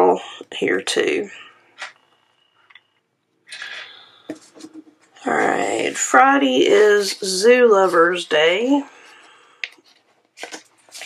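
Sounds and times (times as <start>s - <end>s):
paper rustling: 9.2s - 11.0s.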